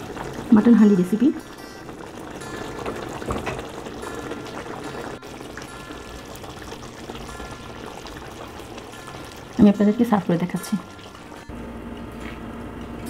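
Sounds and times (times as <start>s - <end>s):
thick gravy bubbling in a pot: 0.0s - 11.4s.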